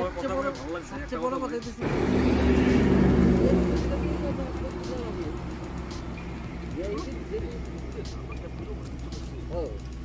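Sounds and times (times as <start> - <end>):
vehicle engine passing: 1.8 - 10.0.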